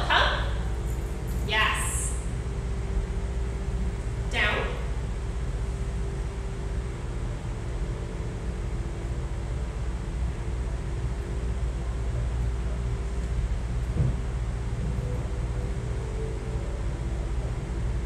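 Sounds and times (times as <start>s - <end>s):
machinery hum and rumble: 0.0s - 18.0s
low thump: 13.9s - 14.2s.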